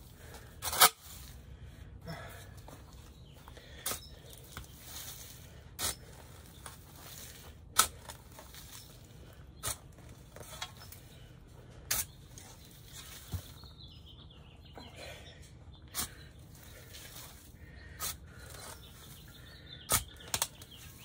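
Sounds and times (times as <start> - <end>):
shovel scraping into soil: 0.3 - 1.4, 3.8 - 11.2, 11.9 - 13.6, 15.9 - 21.0.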